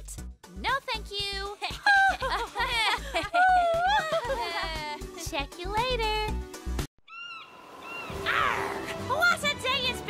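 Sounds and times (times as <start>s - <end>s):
seagull cries: 7.0s - 8.9s.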